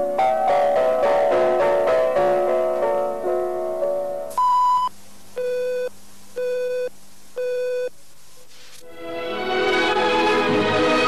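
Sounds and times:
electronic beeps: 0:04.4 - 0:07.9.

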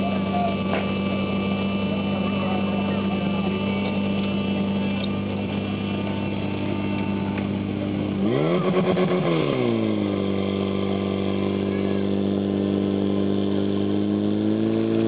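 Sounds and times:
pump engine idling: 0:00.0 - 0:15.0.

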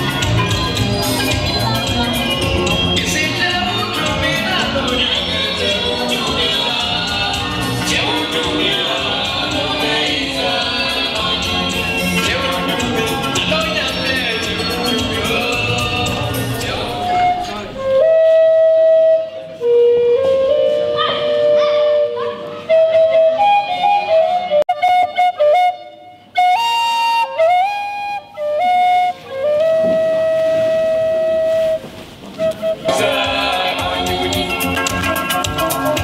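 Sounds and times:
band music: 0:00.0 - 0:36.0
flute-like melody: 0:11.0 - 0:36.0.

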